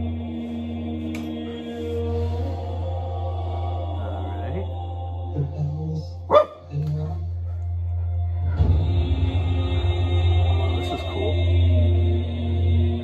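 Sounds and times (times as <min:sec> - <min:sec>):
dark music with low drone: 0:00.0 - 0:13.0
dog barking: 0:06.3 - 0:07.6.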